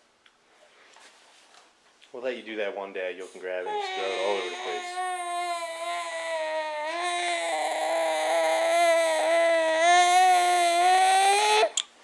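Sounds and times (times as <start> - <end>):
baby groaning: 3.6 - 11.8.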